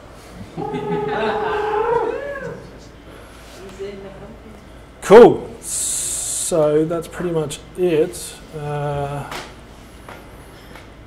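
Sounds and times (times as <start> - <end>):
man laughing: 0.4 - 2.4.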